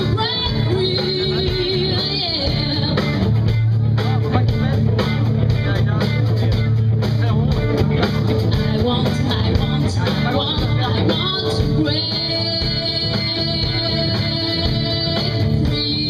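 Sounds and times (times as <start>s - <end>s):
woman singing: 0.0s - 3.4s, 8.5s - 16.0s
rock band playing: 0.0s - 16.0s.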